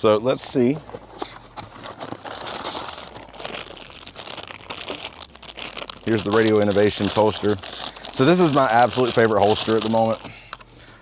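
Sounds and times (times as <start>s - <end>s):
plastic bag crinkling: 1.7s - 10.7s.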